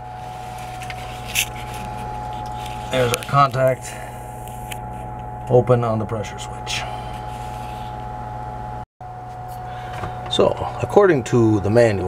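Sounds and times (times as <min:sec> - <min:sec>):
low hum with faint whine: 0:00.0 - 0:12.0
brief scrape: 0:07.0 - 0:08.0.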